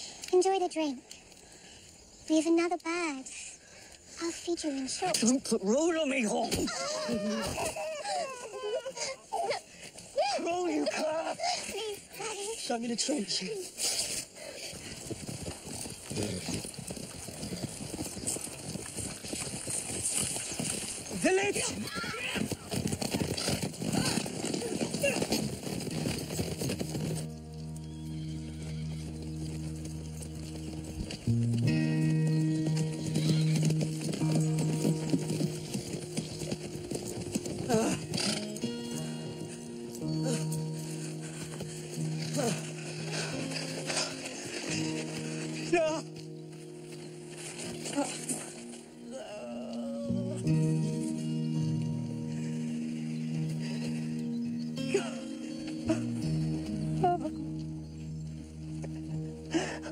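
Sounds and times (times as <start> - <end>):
horses galloping: 2.3 - 59.9
slow film score low notes: 27.1 - 33.1, 33.7 - 59.9.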